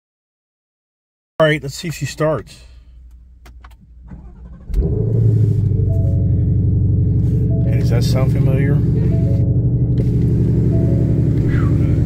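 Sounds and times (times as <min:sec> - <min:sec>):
car engine starting and idling: 0:01.5 - 0:12.0
short high steady tones: 0:10.5 - 0:12.0.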